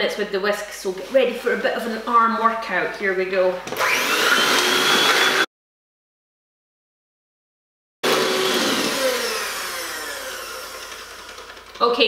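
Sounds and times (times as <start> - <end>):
electric hand whisk whining: 3.7 - 5.5, 8.0 - 11.8.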